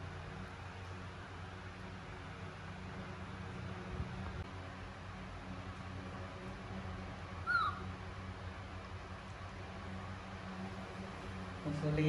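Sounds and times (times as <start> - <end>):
steady low hum: 0.0 - 12.0
baby monkey squeaking: 7.5 - 7.8.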